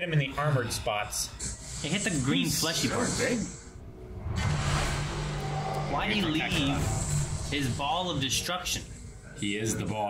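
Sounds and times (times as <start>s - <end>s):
background music: 0.0s - 9.9s
rushing noise effect: 4.0s - 8.2s.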